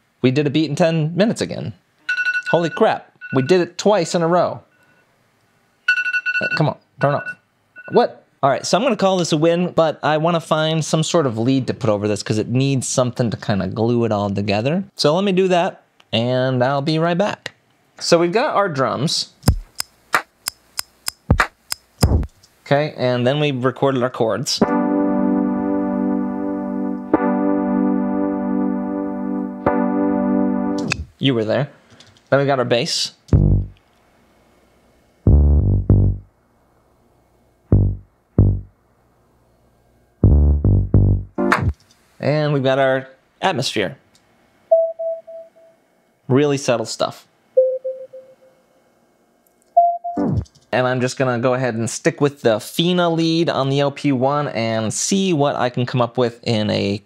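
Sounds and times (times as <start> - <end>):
crisp snare and hi-hat hits: 19.4 - 22.4, 41.0 - 41.8
deep kick drum: 19.5 - 19.7, 21.3 - 22.3, 33.4 - 33.7, 35.3 - 36.2, 37.8 - 38.7, 40.2 - 41.7
soft pure synthesizer tone: 24.6 - 31.1, 33.4 - 33.8, 37.7 - 38.8.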